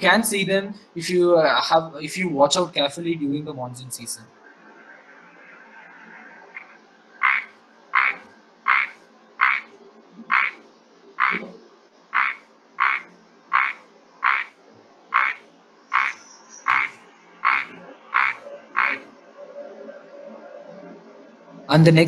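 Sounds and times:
frog calling: 6.5s - 19.2s.

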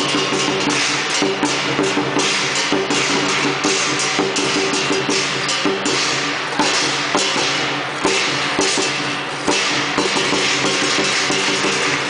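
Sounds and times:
cymbals clashing: 0.0s - 12.0s
large drum beaten fast: 0.0s - 12.0s.

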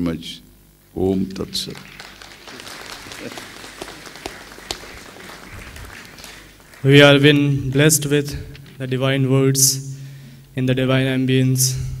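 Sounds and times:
audience clapping: 1.4s - 8.6s
sharp single claps: 1.7s - 6.9s.

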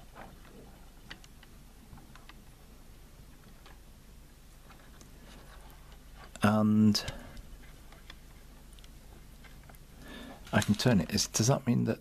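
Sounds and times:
small gear clicks: 10.5s - 11.1s.

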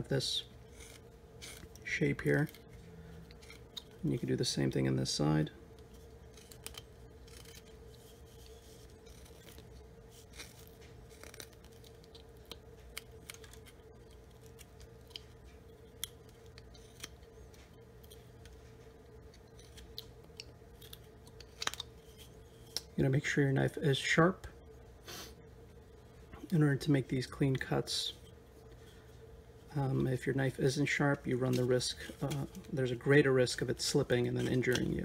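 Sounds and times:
steady low hum: 0.0s - 35.0s
knife cutting and scraping wood: 0.6s - 2.7s, 5.9s - 17.3s, 34.2s - 35.0s.

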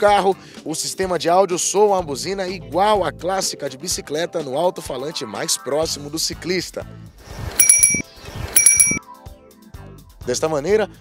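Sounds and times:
bicycle bell chime through speaker: 7.6s - 8.0s, 8.6s - 9.0s.

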